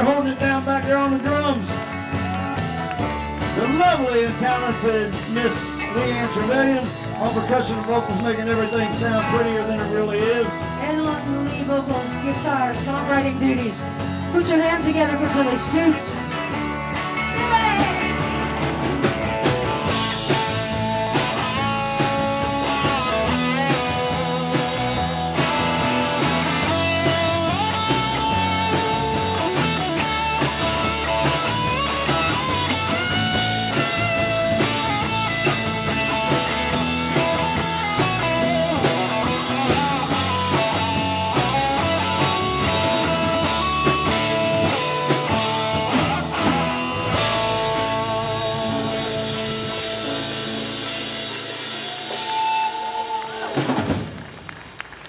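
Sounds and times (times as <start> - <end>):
drum kit: 0.0 - 54.7
bass guitar: 0.0 - 54.8
electric guitars: 0.0 - 55.0
tambourine: 19.8 - 50.3.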